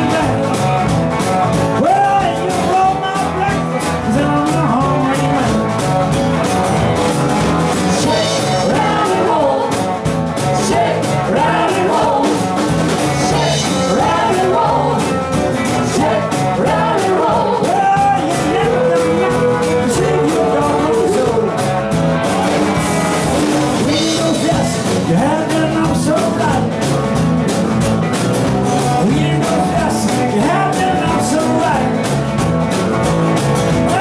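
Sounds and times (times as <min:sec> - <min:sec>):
live rock and roll band: 0:00.0 - 0:34.0.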